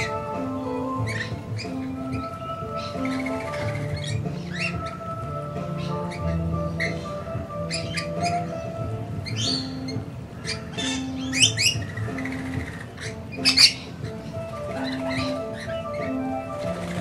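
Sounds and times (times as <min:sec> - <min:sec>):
background music with held notes: 0:00.0 - 0:17.0
lorikeets screeching: 0:00.0 - 0:17.0.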